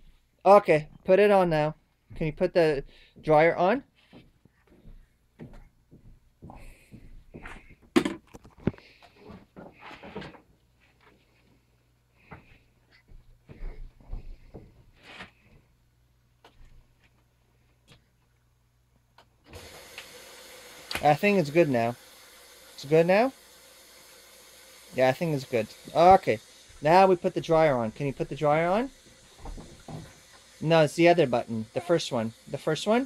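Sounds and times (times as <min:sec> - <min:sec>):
steady hiss: 0:19.5 - 0:33.0.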